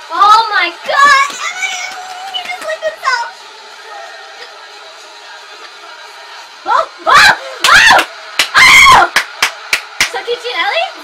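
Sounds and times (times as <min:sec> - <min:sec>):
hand claps: 0:00.8 - 0:02.9, 0:07.6 - 0:10.2
women squealing and screaming: 0:06.7 - 0:09.1.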